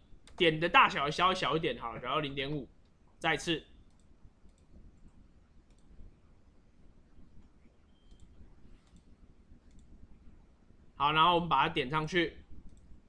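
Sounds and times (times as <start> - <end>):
faint keyboard and mouse clicks: 0.2 - 0.5, 3.8 - 6.1, 7.2 - 10.1, 12.6 - 13.0.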